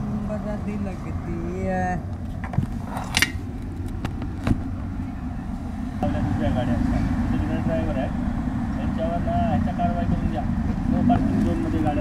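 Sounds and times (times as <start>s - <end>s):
car passing: 0.0s - 12.0s
indistinct voices talking: 0.0s - 12.0s
low rumble of road traffic: 0.0s - 12.0s.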